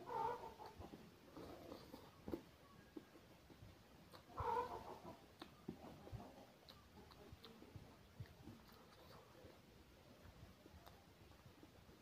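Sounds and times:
soft chewing and mouth clicks: 0:00.1 - 0:12.0.

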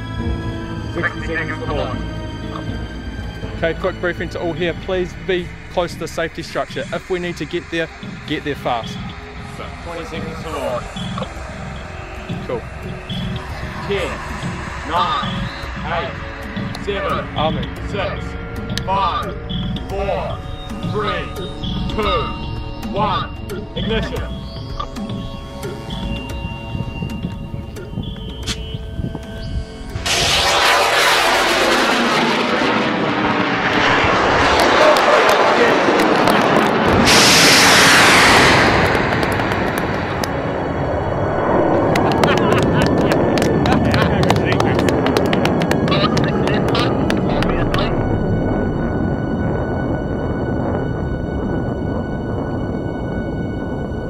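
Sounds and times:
rocket motor roaring: 0:04.6 - 0:22.9, 0:29.6 - 0:54.0.

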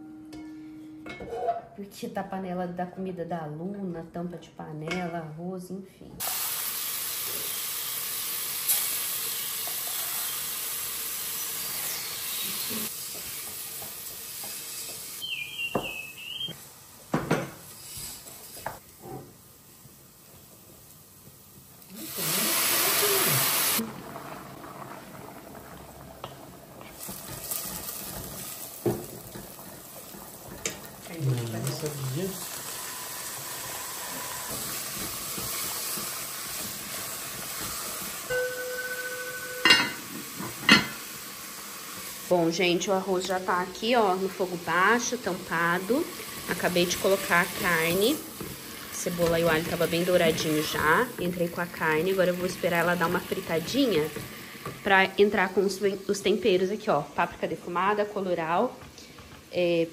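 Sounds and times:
rice sizzling in oil: 0:06.2 - 0:59.9.

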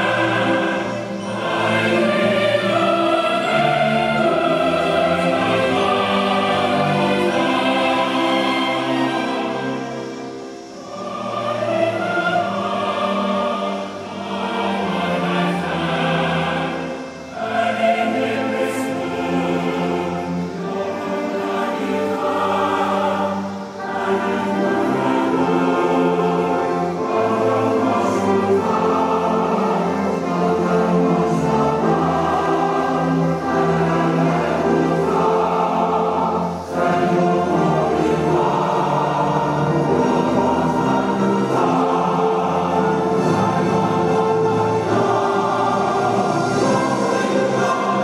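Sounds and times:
choir singing: 0:00.0 - 0:48.0
orchestral accompaniment: 0:00.0 - 0:48.0.

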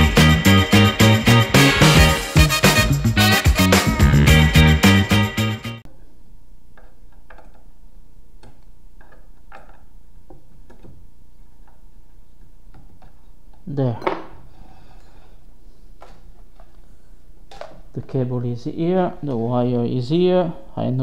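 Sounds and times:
upbeat background music: 0:00.0 - 0:05.8.

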